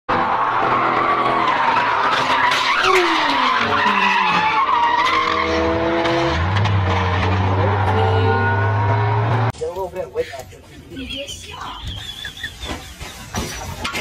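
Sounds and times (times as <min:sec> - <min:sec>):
car engine: 0:00.1 - 0:09.6
tyres squealing: 0:01.2 - 0:09.5.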